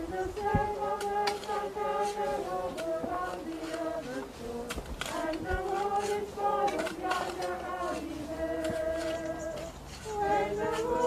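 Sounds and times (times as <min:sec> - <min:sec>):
people singing a hymn: 0:00.0 - 0:11.0
shovels scraping earth and gravel: 0:00.4 - 0:11.0.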